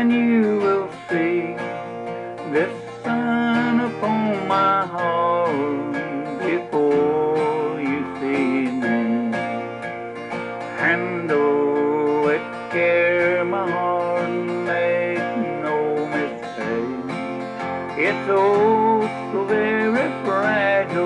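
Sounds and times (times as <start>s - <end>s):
acoustic guitar strumming: 0.0s - 21.0s
man singing country song: 0.0s - 21.0s.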